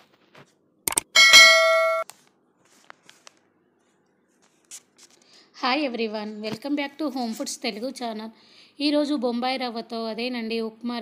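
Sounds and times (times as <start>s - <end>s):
notification bell ding: 1.2s - 2.0s.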